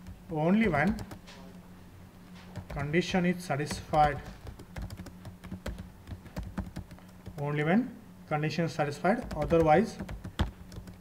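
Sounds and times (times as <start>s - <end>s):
keyboard typing: 0.0s - 1.6s, 2.5s - 7.5s, 9.1s - 11.0s.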